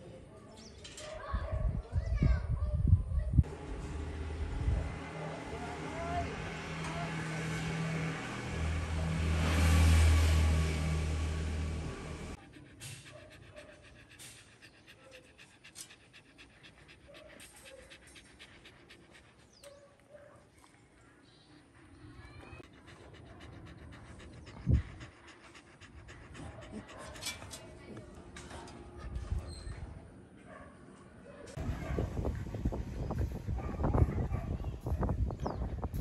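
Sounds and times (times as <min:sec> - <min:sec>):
vehicle engine hum passing: 0:03.4 - 0:19.5
dog panting: 0:11.3 - 0:20.4, 0:21.5 - 0:29.8.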